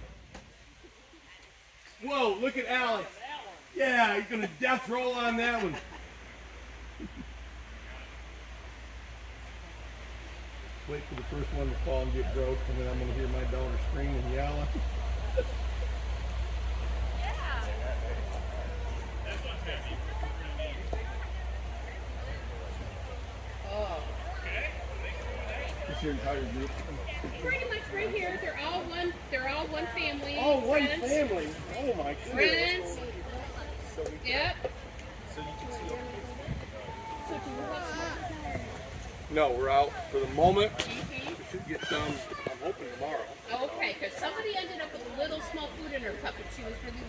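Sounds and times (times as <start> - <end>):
faint voices: 0.0 - 47.0
steady low rumble: 5.8 - 41.6.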